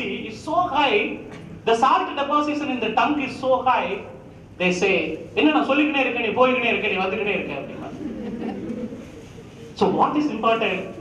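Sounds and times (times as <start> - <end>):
man speaking: 0.0 - 8.0, 9.8 - 11.0.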